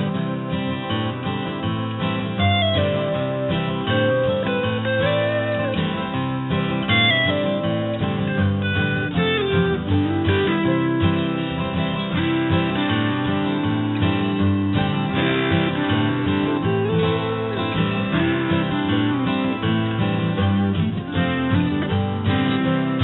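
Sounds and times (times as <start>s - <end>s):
pop music with acoustic guitar: 0.0s - 23.0s.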